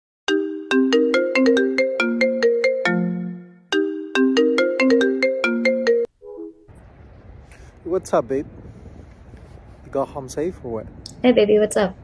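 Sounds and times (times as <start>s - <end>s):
phone ringtone melody: 0.3s - 6.7s.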